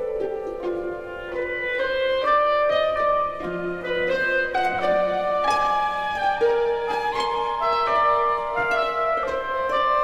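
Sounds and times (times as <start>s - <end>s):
orchestra playing sustained notes: 0.0s - 10.0s.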